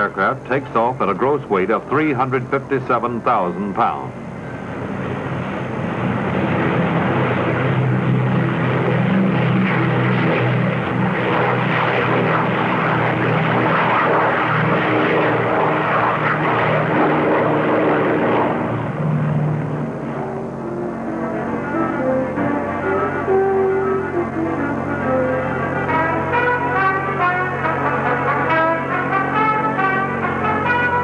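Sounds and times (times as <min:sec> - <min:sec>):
aircraft engines droning: 0:00.0 - 0:31.0.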